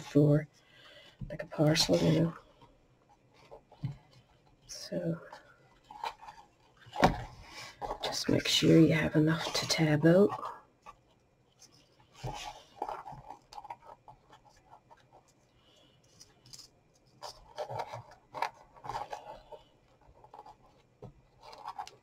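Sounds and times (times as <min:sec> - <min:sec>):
ribbon rustling against card box: 0:03.1 - 0:22.0.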